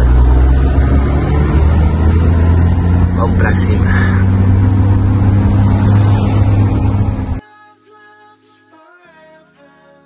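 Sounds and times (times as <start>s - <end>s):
road noise: 0.0s - 7.4s
truck engine running: 0.0s - 7.4s
soft music: 6.4s - 10.0s.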